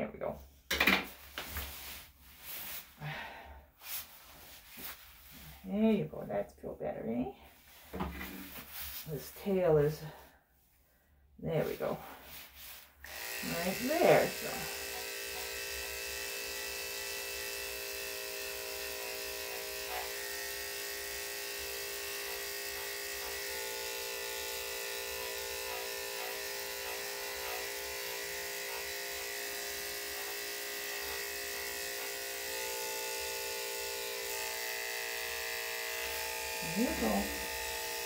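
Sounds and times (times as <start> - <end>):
electric clipper humming: 13.0 - 38.0.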